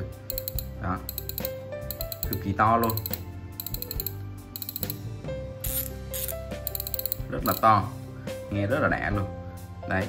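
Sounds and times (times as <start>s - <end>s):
fishing reel drag clicking: 0.3s - 5.0s, 5.7s - 7.6s.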